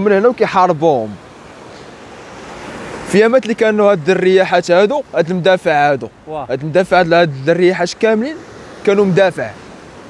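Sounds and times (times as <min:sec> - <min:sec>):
sea surf rushing: 0:00.0 - 0:10.0.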